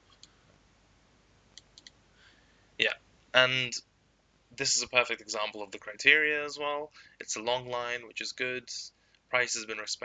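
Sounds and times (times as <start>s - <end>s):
faint computer mouse clicks: 1.5s - 2.0s.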